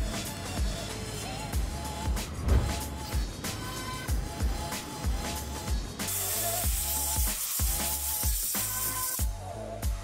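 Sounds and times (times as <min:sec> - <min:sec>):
background music with steady beat: 0:00.0 - 0:10.0
aerosol can spraying hiss: 0:06.0 - 0:09.3.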